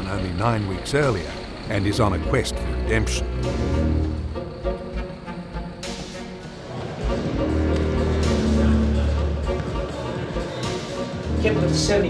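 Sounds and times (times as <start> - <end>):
soundtrack score with low bass: 0.0 - 12.0.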